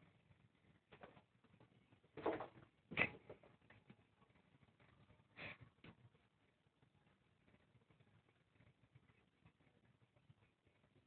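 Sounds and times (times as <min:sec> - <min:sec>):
kittens scratching and scrabbling: 0:00.0 - 0:11.0.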